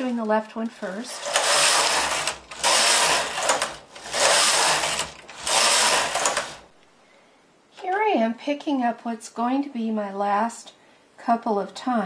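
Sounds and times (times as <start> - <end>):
knitting machine carriage sliding: 0.8 - 6.7.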